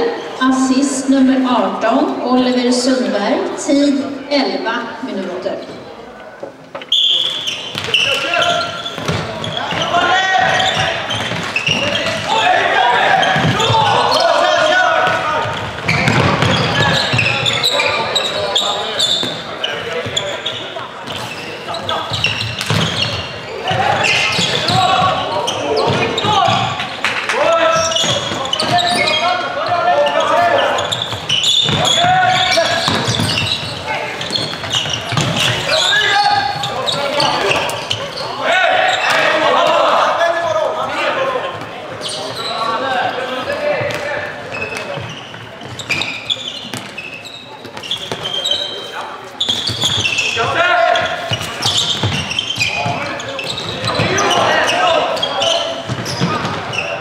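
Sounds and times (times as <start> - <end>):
people calling out: 6.9 - 20.6, 27.4 - 43.7.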